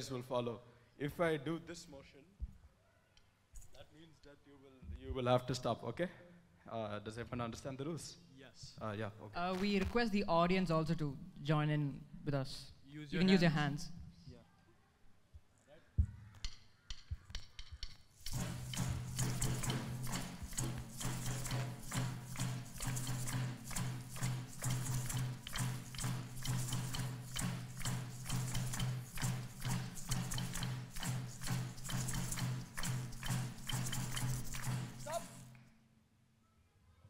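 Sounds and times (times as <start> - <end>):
stick taps: 16.4 - 35.6
group hand drumming: 17.3 - 35.5.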